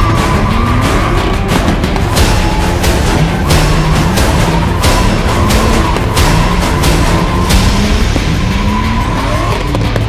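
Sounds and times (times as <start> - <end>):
car engine revving: 0.0 - 10.0.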